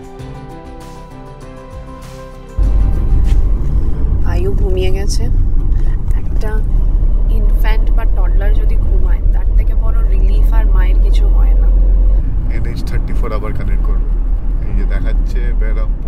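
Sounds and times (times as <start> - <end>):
car rumbling from inside cabin: 2.6 - 16.0
woman talking: 4.2 - 6.7, 7.3 - 11.8.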